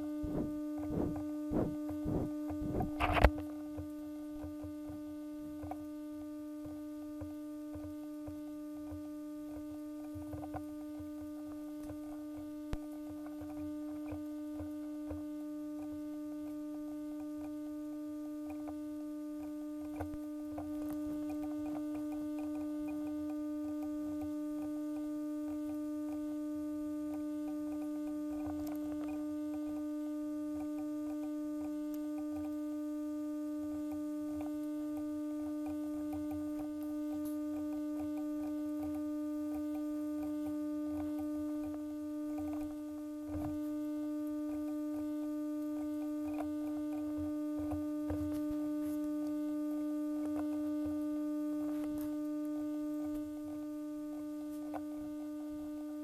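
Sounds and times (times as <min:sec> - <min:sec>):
electrical hum: 0:00.0 - 0:56.0.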